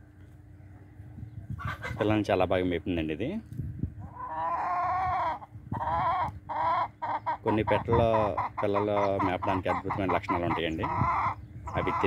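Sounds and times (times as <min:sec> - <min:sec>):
chicken calling: 0:01.5 - 0:02.2, 0:04.0 - 0:12.0.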